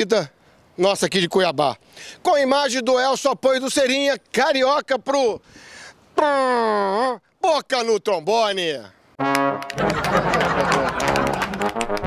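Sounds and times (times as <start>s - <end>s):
brass theme jingle: 9.2s - 12.0s.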